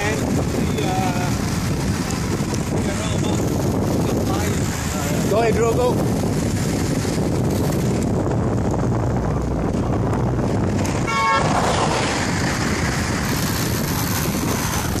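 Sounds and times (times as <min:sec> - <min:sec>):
bicycle road noise: 0:00.0 - 0:15.0
wind rushing over microphone: 0:00.0 - 0:15.0.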